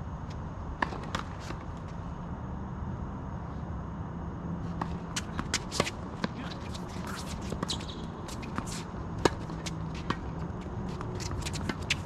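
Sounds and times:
shoes squeaking on hard court: 4.7s - 12.0s.

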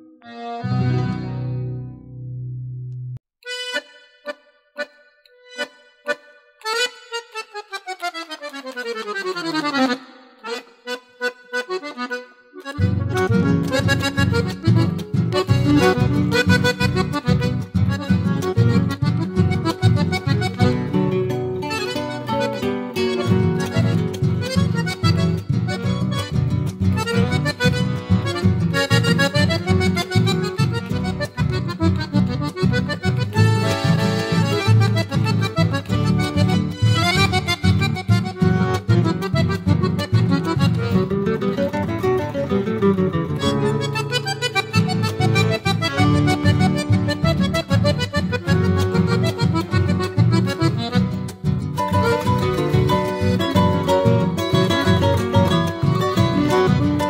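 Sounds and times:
accordion playing: 0.0s - 2.0s, 3.4s - 57.0s
band with bass and guitars: 0.3s - 3.2s, 12.7s - 57.0s.

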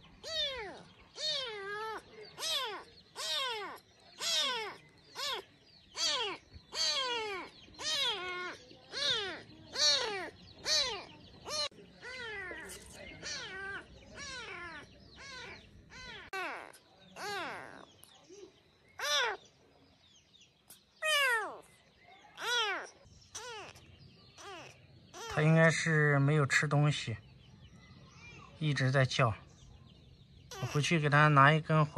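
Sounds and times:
kitten meowing: 0.2s - 17.8s, 21.0s - 21.6s, 22.3s - 23.8s, 24.4s - 25.4s, 30.5s - 30.8s.

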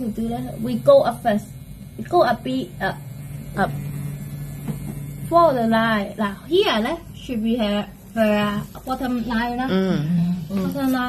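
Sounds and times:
makeup machine pen humming: 0.0s - 11.0s.

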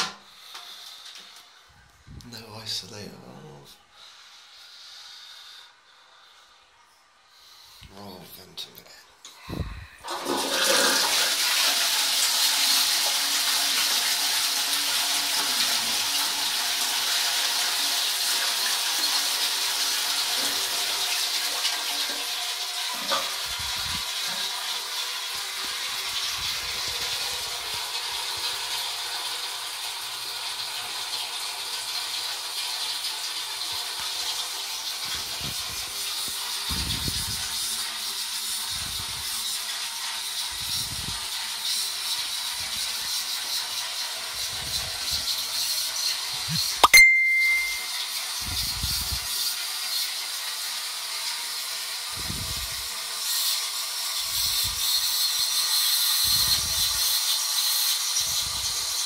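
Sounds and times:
cistern refilling hiss: 0.2s - 1.7s, 9.4s - 59.0s
toilet flush water rush: 10.0s - 59.0s.

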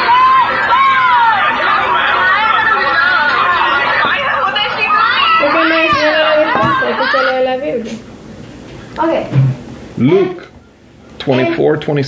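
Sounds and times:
children chattering: 0.0s - 8.0s.

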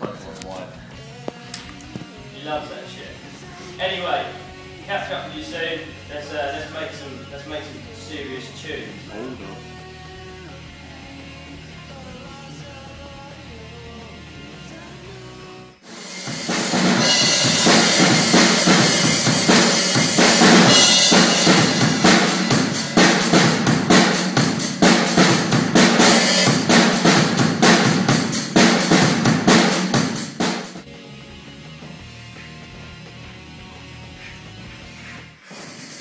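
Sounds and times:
quiet music: 0.0s - 15.8s
acoustic drum kit playing fast: 15.8s - 30.9s, 31.6s - 36.0s.

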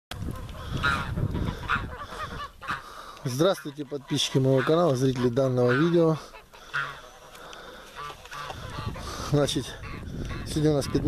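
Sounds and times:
geese honking: 0.2s - 11.0s.

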